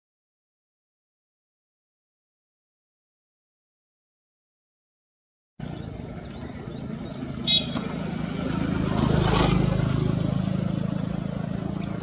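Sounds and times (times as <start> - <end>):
passing vehicle engine hum: 5.6 - 12.0.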